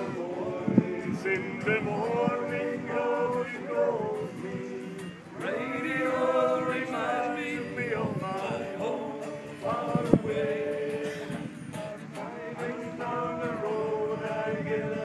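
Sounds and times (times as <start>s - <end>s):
group yodelling in harmony: 0.0s - 15.0s.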